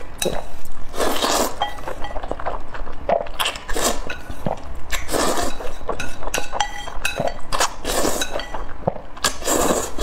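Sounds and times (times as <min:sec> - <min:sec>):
slurping noodles: 0:00.9 - 0:01.6, 0:03.1 - 0:05.8, 0:07.6 - 0:08.3, 0:09.2 - 0:10.0.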